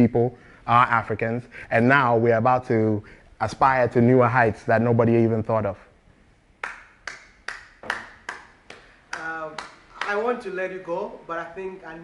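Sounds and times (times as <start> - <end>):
person clapping hands: 6.6 - 10.2.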